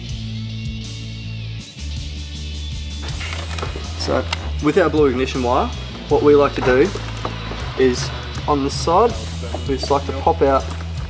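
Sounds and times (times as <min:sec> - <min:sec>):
background music with bass line: 0:00.0 - 0:11.0.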